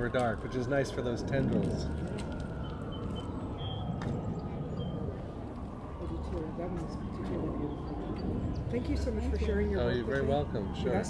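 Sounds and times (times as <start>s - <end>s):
steady low rumble: 0.0s - 10.8s.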